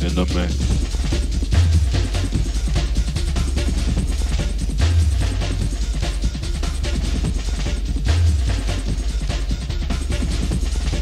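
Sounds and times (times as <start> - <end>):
fast drum pattern: 0.0 - 11.0.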